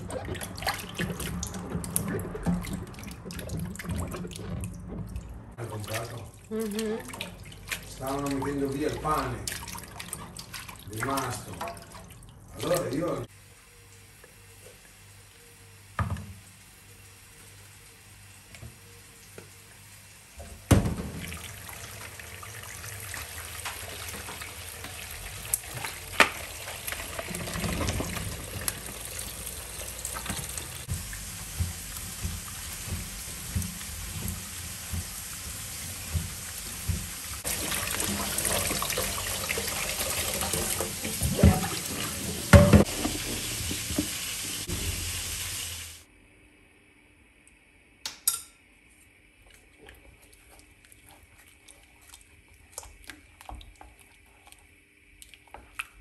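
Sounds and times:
water running into plastic bowl: 0:00.0 - 0:13.3, 0:20.6 - 0:45.5
fruit rubbed and washed by hand: 0:05.3 - 0:11.8, 0:12.4 - 0:13.3, 0:21.8 - 0:45.9, 0:48.9 - 0:56.0
thump: 0:20.7 - 0:21.2.

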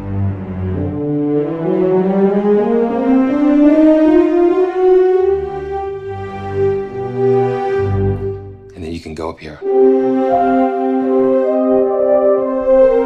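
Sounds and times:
orchestral legato melody: 0:00.0 - 0:13.0.

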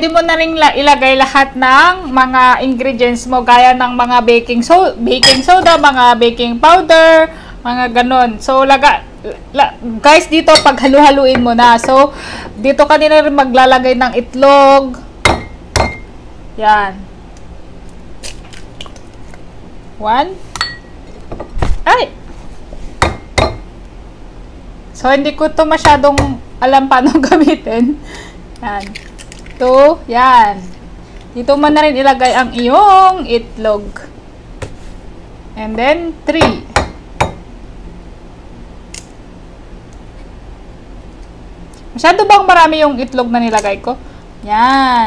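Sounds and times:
egg shell crackling: 0:17.9 - 0:19.4, 0:28.5 - 0:29.8
egg cracking against edge: 0:28.5 - 0:29.6.

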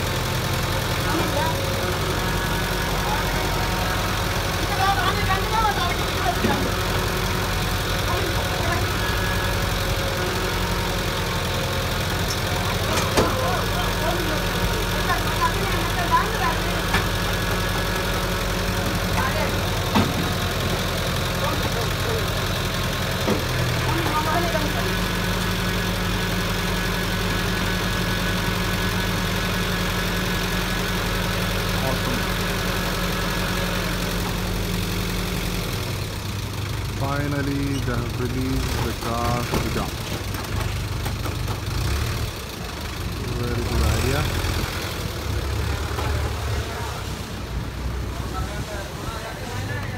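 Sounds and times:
tow truck engine running: 0:00.0 - 0:49.9.

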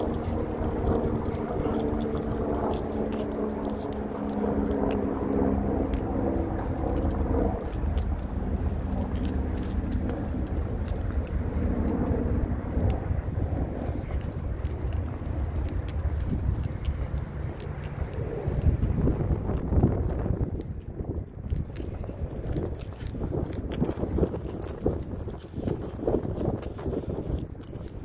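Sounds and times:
droning hum: 0:00.0 - 0:28.0
wind rumble on microphone: 0:00.0 - 0:28.0.

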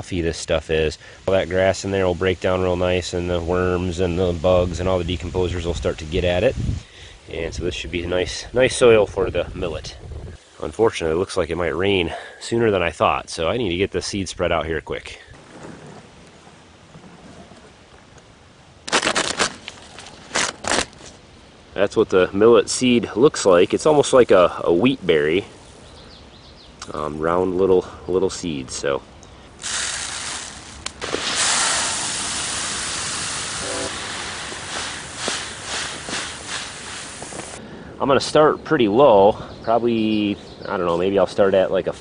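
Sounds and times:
paper crinkling and rustling: 0:18.9 - 0:21.2
seed pouring into plastic hopper: 0:29.6 - 0:37.6
seed trickling from hands: 0:29.6 - 0:37.6.

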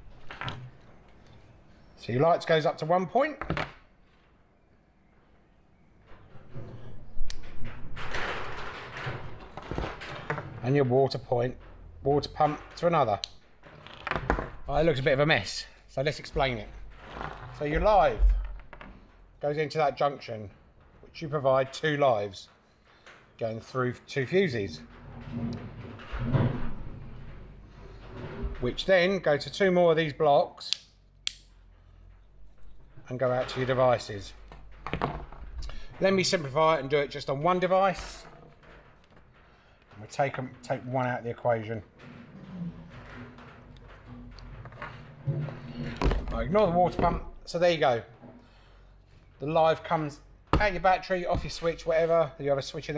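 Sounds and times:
wires rustling and knocking: 0:00.0 - 0:01.8, 0:06.0 - 0:29.7, 0:31.3 - 0:52.9
sharp click: 0:30.7 - 0:31.5.

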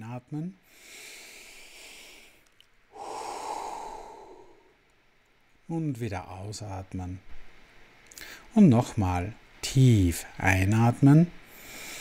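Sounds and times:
man breathing out through mouth: 0:00.7 - 0:04.8
man inhaling deeply: 0:00.7 - 0:04.8, 0:11.5 - 0:12.0.

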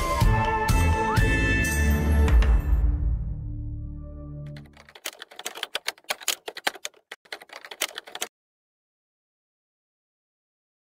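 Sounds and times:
rapid keyboard typing clicks: 0:04.5 - 0:08.3.

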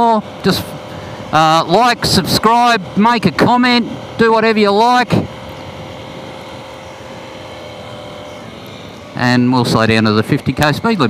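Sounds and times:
motorcycle engine cruising: 0:00.0 - 0:11.0.

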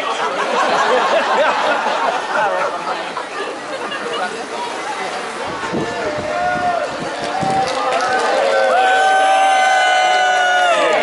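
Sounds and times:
crowd cheering long woo: 0:06.0 - 0:11.0.

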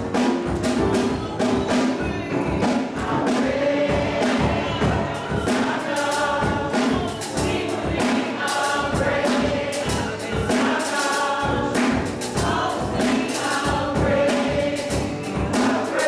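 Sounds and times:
choir singing gospel: 0:00.0 - 0:16.0
drums: 0:00.0 - 0:16.0
keyboard: 0:00.0 - 0:16.0.

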